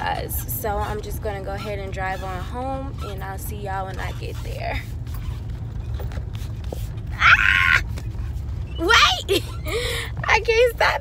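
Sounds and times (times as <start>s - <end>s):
car cabin rumble: 0.0s - 11.0s
woman shrieking: 7.1s - 7.9s.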